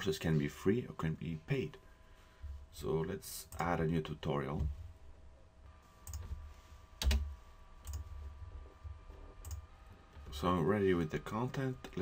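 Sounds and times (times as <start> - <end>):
faint electronic hum: 0.0 - 12.0.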